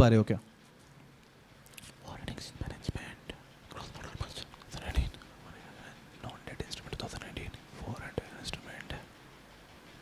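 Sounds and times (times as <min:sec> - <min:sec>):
man whispering: 0:01.9 - 0:09.1.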